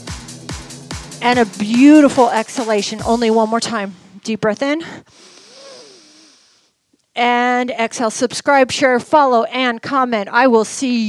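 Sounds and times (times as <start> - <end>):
woman inhaling deeply: 5.0 - 6.7.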